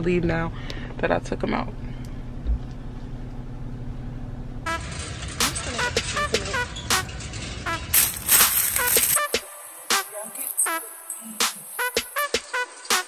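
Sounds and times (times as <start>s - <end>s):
low hum inside car: 0.0s - 4.7s
music with horn-like notes: 4.7s - 13.0s.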